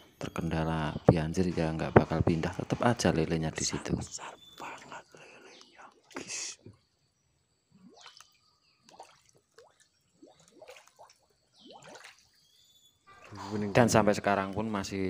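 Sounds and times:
water plops and drips: 7.7s - 13.5s.

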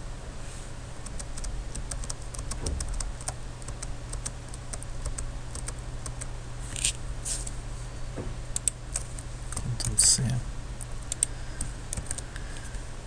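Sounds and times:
steady low hum: 0.0s - 13.0s
keyboard and mouse clicking: 1.0s - 6.3s, 8.6s - 10.0s, 11.1s - 11.3s, 11.9s - 12.2s.

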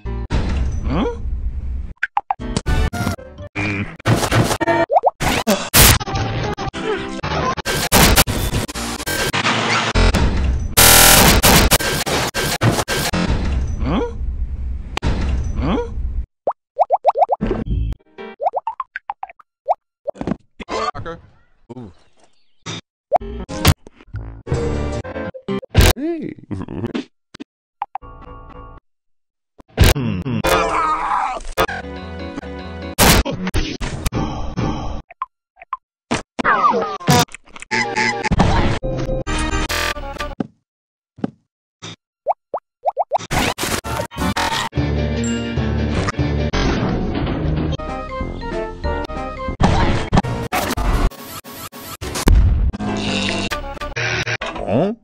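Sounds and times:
noisy bursts: 10.8s - 12.4s
rising cartoon plops: 16.8s - 17.4s, 18.4s - 20.2s, 42.3s - 43.2s.

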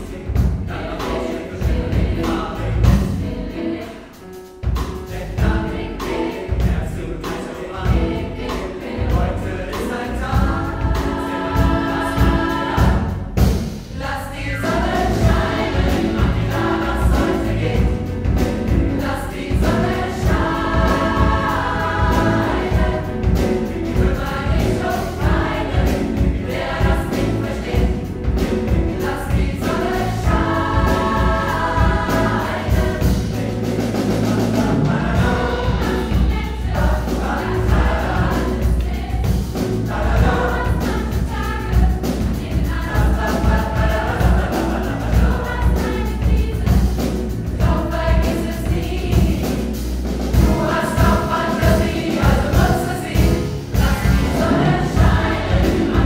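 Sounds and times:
piano bass and drums: 0.0s - 56.0s
pop choir singing: 0.0s - 56.0s.

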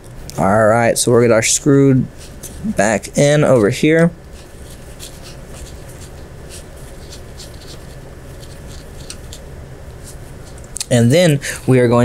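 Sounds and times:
screwdriver scratching and clicking: 2.2s - 2.6s, 3.2s - 10.8s.

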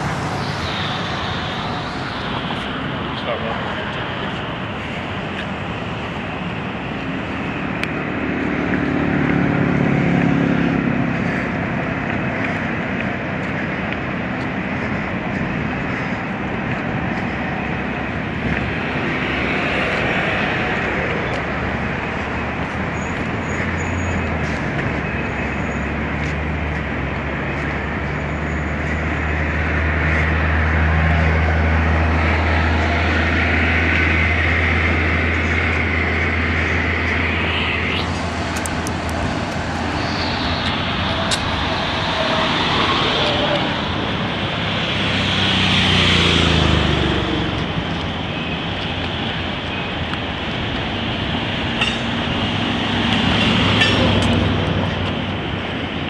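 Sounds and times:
rumble of trains: 0.0s - 56.0s.

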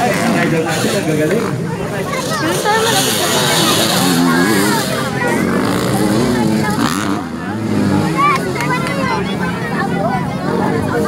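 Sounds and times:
dirt bike engines running: 0.0s - 11.0s
spectators talking: 0.0s - 11.0s.

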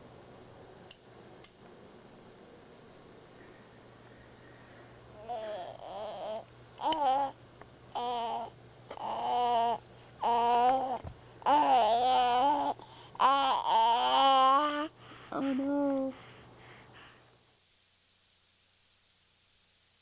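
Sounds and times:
baby babbling: 5.2s - 16.2s.

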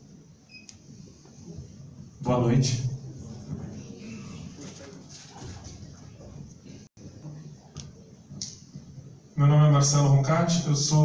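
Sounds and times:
low uneven murmur: 0.0s - 11.0s.

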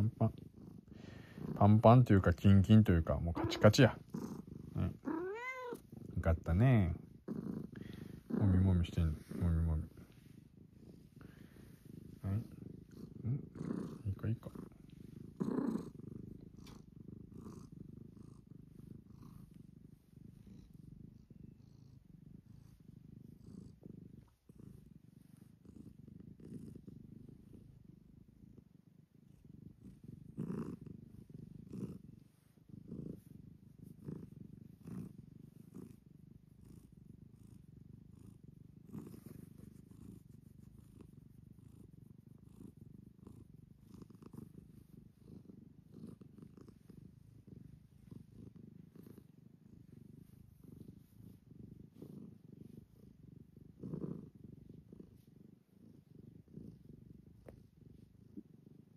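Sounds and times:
cat purring: 0.0s - 58.9s.

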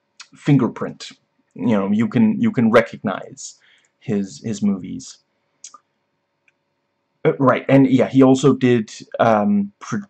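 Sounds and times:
faint small clicks: 5.6s - 6.6s.

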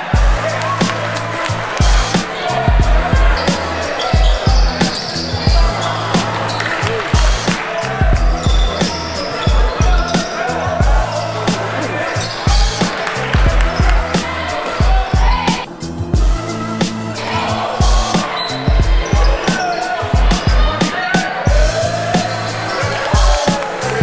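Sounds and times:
held bass line: 0.0s - 20.9s, 21.5s - 24.0s.

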